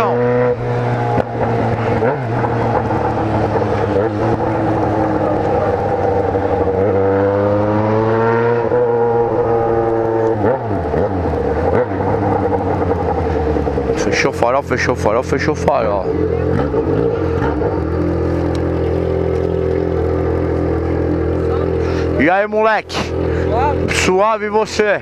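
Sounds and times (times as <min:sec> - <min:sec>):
motorcycle engine running: 0:00.0 - 0:25.0.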